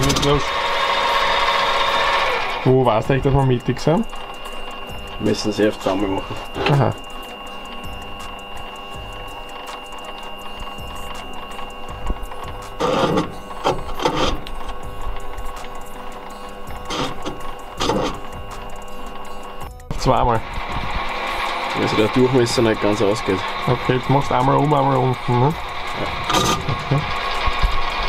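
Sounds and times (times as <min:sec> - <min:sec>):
milling machine whining: 0:00.0 - 0:28.0.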